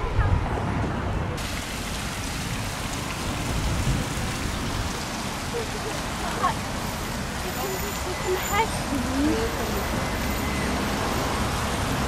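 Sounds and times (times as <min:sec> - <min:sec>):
faint voices of passers-by: 0:00.0 - 0:01.4, 0:04.7 - 0:11.8
traffic rushing: 0:00.0 - 0:12.0.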